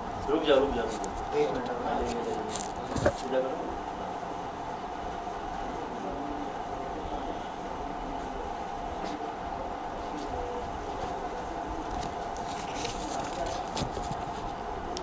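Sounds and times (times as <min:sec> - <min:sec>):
constant mid-pitched hum: 0:00.0 - 0:15.0.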